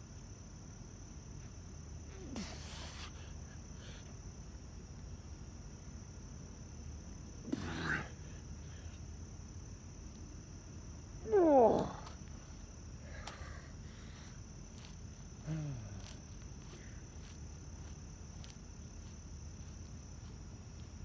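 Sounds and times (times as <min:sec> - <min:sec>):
crickets trilling: 0:00.0 - 0:21.0.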